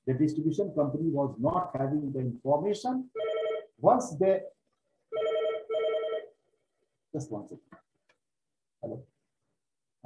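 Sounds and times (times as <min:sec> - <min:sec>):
phone ringtone electronic rings: 0:03.2 - 0:03.8, 0:05.1 - 0:06.3.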